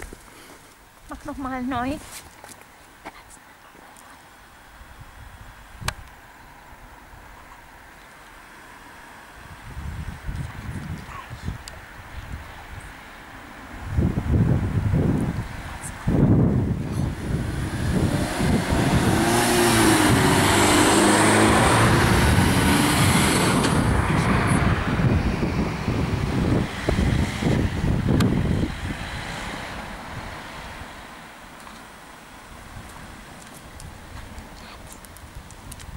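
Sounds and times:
car driving past: 15.6 - 31.5.

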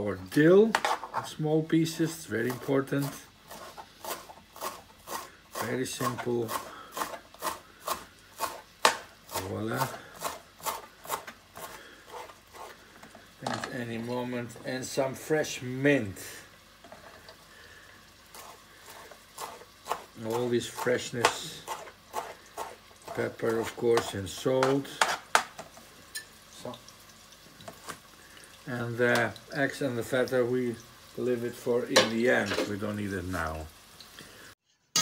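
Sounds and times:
pan sizzling: 0.0 - 35.0
knife chopping on plastic board: 6.5 - 9.1.

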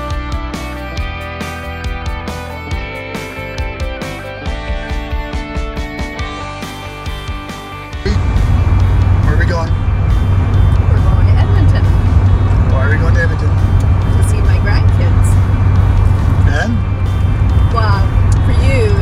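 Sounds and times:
guitar music: 0.0 - 19.0
engine and road drone in cab: 8.0 - 19.0.

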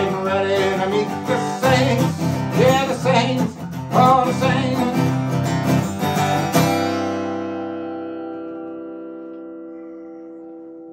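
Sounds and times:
acoustic guitar chord ringing: 0.0 - 10.6.

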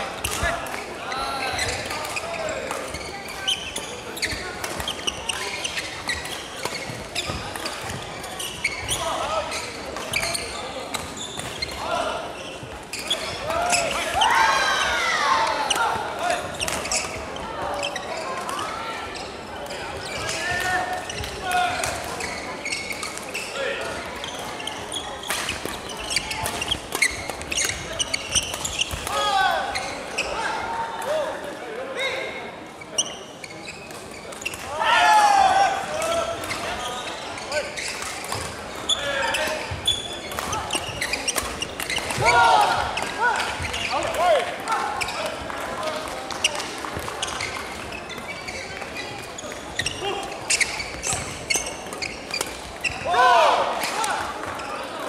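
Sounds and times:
sneakers squeaking on wooden floor: 0.2 - 30.7, 32.8 - 34.7, 36.0 - 53.2.

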